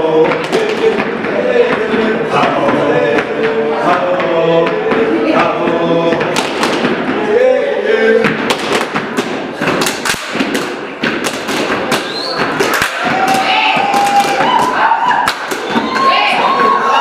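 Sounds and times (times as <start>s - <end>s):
voices calling out: 11.9s - 17.0s.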